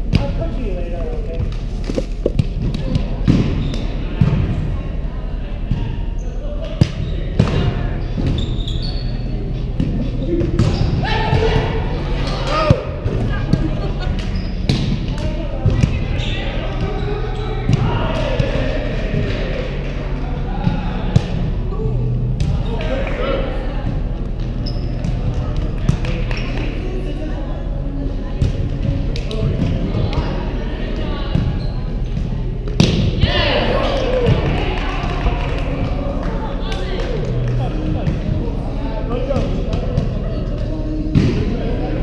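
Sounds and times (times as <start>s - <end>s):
indistinct chatter echoing in gym: 0.0s - 42.0s
players' voices in a hall: 0.0s - 42.0s
steady low hum: 0.0s - 42.0s
sneakers squeaking on court: 24.6s - 25.3s.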